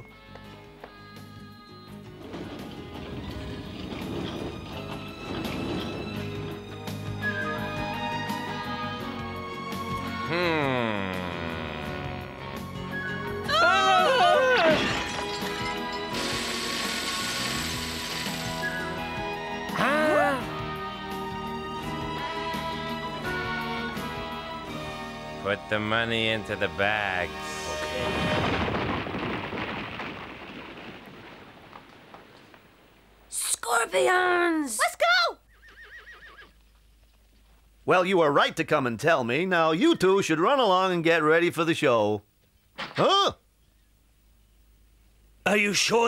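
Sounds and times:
cartoon background music: 6.8s - 14.9s, 16.1s - 28.3s
frightened cry: 10.3s - 12.7s, 13.4s - 14.8s, 19.7s - 20.6s
horse whinnying: 11.1s - 14.9s, 35.4s - 36.6s.

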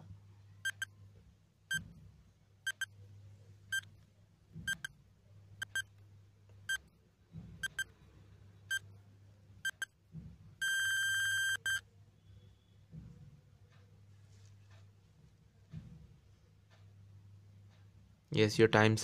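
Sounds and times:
long steady beep: 0.6s - 0.9s, 2.7s - 2.9s, 7.6s - 7.9s, 9.7s - 9.9s, 10.6s - 12.8s
countdown timer beeping: 2.7s - 2.9s, 7.6s - 7.9s, 9.7s - 9.9s.

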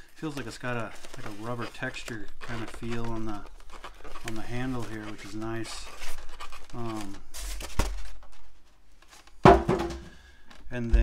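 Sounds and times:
plastic handling noise: 0.0s - 10.7s
low thump: 9.5s - 10.2s.

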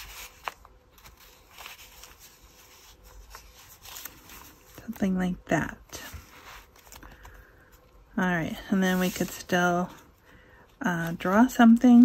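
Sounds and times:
paper rustling and sliding: 0.0s - 5.0s, 5.9s - 7.8s, 8.5s - 10.0s.

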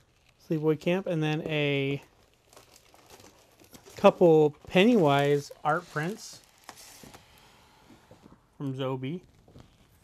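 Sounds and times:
packaging crinkling and rustling: 0.0s - 10.0s.

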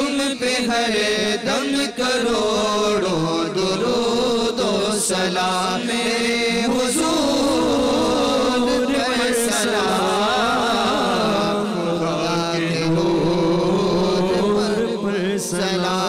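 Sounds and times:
men chanting together: 0.0s - 16.0s.

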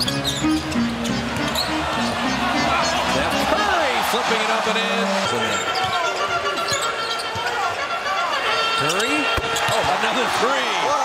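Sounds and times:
basketball bouncing on court: 9.3s - 10.0s.

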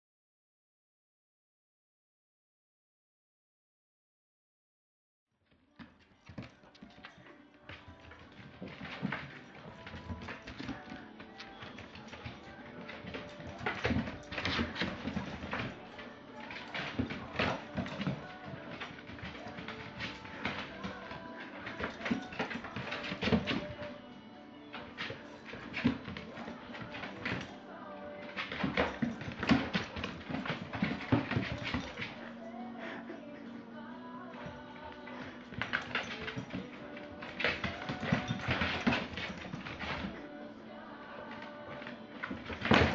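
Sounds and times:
background music: 5.5s - 42.9s
dog claws clicking on wooden floor: 6.0s - 24.0s, 28.3s - 32.3s, 34.4s - 40.2s, 41.4s - 42.9s.

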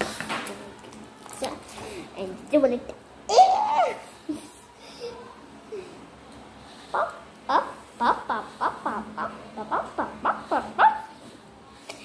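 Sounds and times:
girl laughing: 7.0s - 11.0s.

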